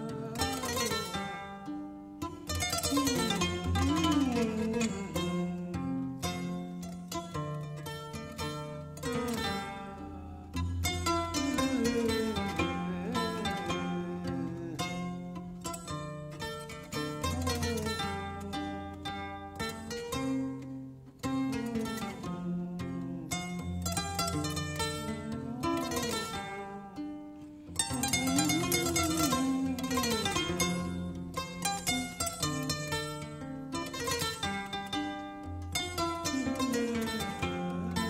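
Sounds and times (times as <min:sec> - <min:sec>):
kora playing plucked melody: 0:00.0 - 0:38.0.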